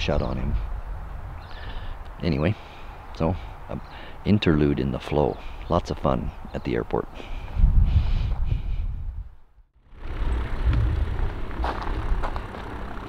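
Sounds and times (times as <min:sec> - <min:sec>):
wind rumble on microphone: 0:00.0 - 0:02.4, 0:07.3 - 0:13.0
distant light aircraft engine: 0:09.8 - 0:13.0.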